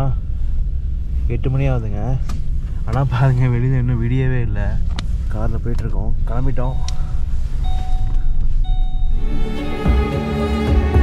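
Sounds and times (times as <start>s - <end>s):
car engine and tyres rumbling: 0.0s - 11.0s
electronic beeps: 6.6s - 9.4s.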